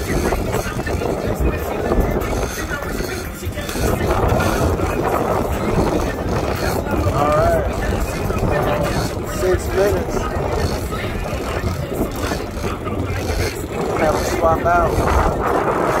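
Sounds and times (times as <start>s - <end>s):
boat noise: 0.0s - 16.0s
wind noise: 0.0s - 16.0s.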